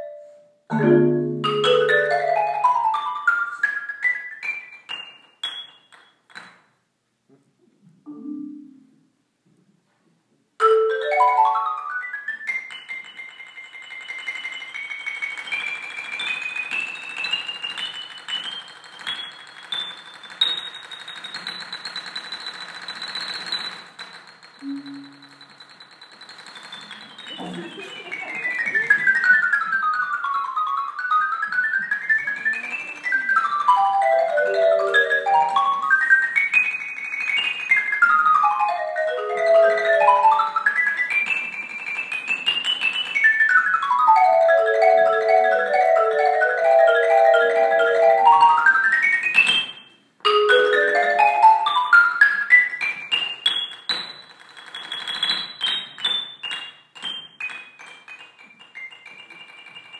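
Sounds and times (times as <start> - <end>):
mallet percussion scale runs: 0.8 - 3.4, 24.6 - 25.6, 44.0 - 49.0, 50.3 - 52.2.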